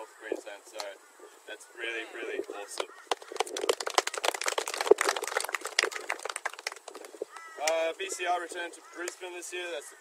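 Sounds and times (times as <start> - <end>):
wind buffeting microphone: 2.1 - 8.4.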